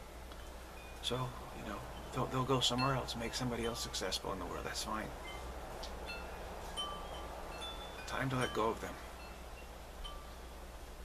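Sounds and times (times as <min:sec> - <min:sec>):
steady low hum: 0:00.0 - 0:11.0
chimes ringing: 0:00.4 - 0:10.7.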